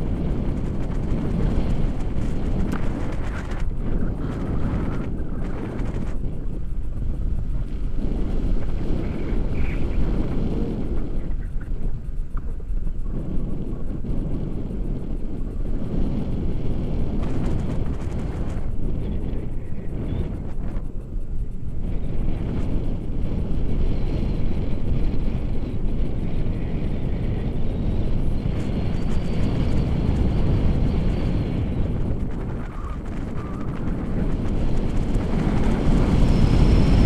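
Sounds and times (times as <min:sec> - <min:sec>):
wind rushing over microphone: 0:00.0 - 0:37.0.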